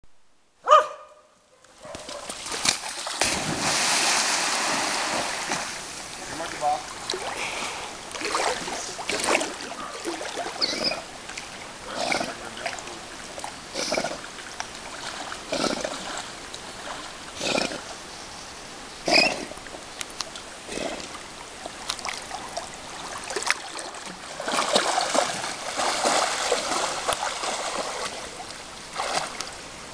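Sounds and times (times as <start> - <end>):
dog barking: 0.6 - 2.3
dog splashing in water: 1.9 - 5.8, 22.0 - 28.4, 29.0 - 29.4
dog snorting while swimming: 11.9 - 12.5, 13.7 - 14.3, 15.0 - 17.9, 19.1 - 19.6, 20.7 - 21.2.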